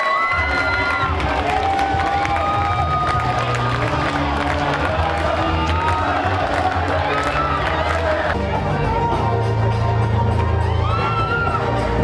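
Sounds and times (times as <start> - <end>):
crowd cheering and shouting: 0.0 - 12.0
low bass music: 0.3 - 12.0.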